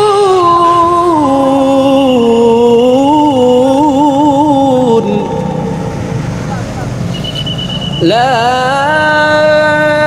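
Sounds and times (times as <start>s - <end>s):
low engine rumble: 0.0s - 10.0s
motorcycles riding past: 5.6s - 10.0s.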